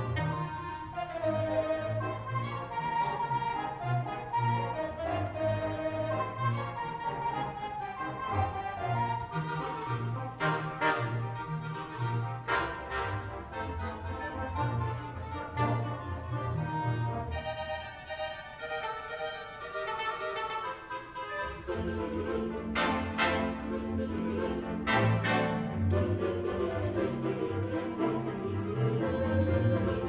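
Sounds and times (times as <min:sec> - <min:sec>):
theatre pipe organ playing: 0:00.0 - 0:30.0.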